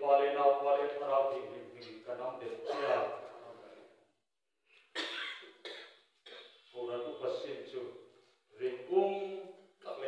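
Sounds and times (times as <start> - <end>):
person coughing: 2.6 - 3.2, 5.0 - 6.6.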